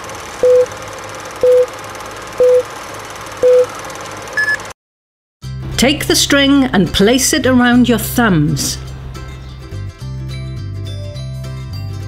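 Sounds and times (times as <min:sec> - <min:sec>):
short beeps: 0:00.4 - 0:00.7, 0:01.4 - 0:01.7, 0:02.4 - 0:02.6, 0:03.4 - 0:03.7, 0:04.4 - 0:04.6.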